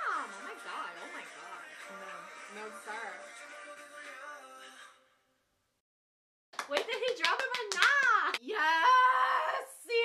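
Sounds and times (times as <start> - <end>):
rapid hand clapping: 6.6 - 8.4
woman's excited voice: 6.9 - 10.0.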